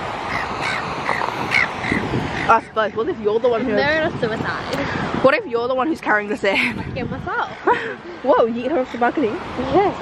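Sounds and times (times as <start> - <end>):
gulls squawking: 0.0 - 5.7
surf rushing: 0.0 - 10.0.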